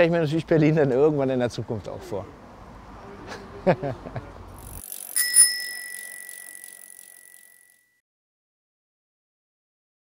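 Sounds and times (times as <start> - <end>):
bicycle bell ringing: 4.6 - 8.0.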